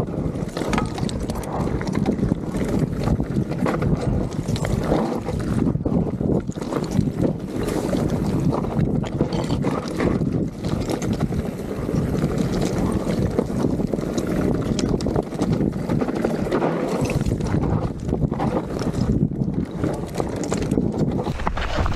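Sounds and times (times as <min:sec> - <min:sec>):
wind rush on microphone: 0:00.0 - 0:21.9
bike knocks and clatters: 0:00.5 - 0:04.7
tyres crunching over stones: 0:21.2 - 0:21.9.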